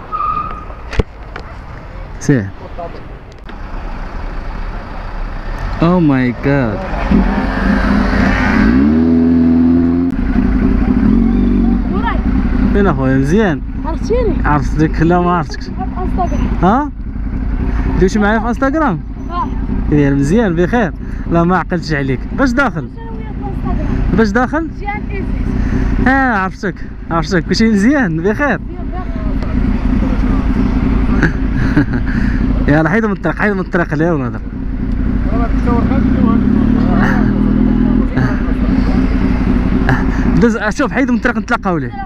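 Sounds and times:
voices talking: 1.2 - 3.6, 4.3 - 8.5, 10.6 - 42.0
motorcycle engine idling: 10.1 - 42.0.

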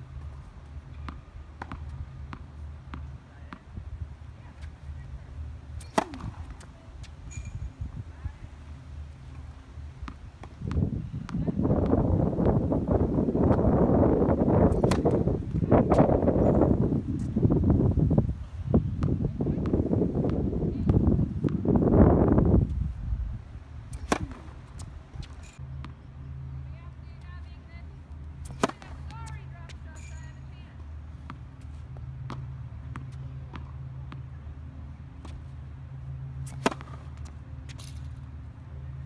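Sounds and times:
tennis ball bouncing on hard court: 0.8 - 3.9, 5.8 - 7.1, 10.0 - 12.7, 14.7 - 16.2, 23.9 - 26.0, 28.4 - 30.4, 31.2 - 34.3, 36.4 - 37.9
tennis racket hitting ball: 5.8 - 6.8, 14.7 - 16.1, 23.9 - 25.5, 28.4 - 30.4, 36.4 - 38.0
wind noise on microphone: 5.9 - 8.6, 10.0 - 25.6.

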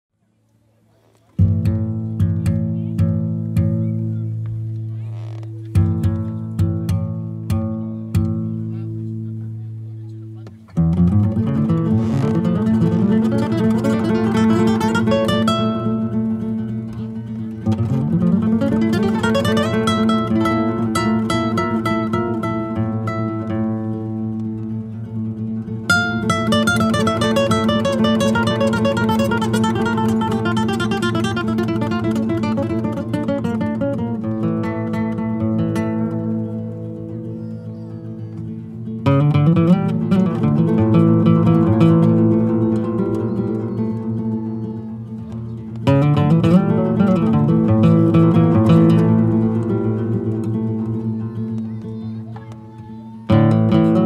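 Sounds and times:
classical guitar duet: 0.6 - 54.0.

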